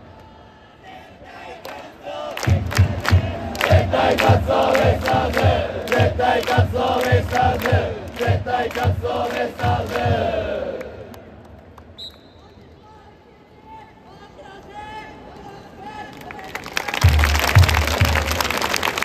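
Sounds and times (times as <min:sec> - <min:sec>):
crowd chanting in unison: 0:00.0 - 0:11.3
steady drum beat: 0:02.5 - 0:10.6, 0:17.0 - 0:18.6.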